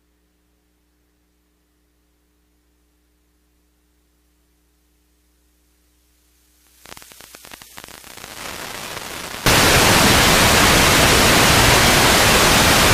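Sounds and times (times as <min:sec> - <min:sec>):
faint hum: 0:00.0 - 0:12.9
loud steady tv hiss: 0:00.0 - 0:12.9
crackling static: 0:05.7 - 0:12.9.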